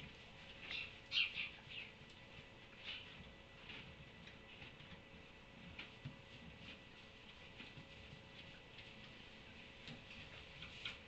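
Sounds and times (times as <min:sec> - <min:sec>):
donkey chewing hay: 0:01.8 - 0:11.0.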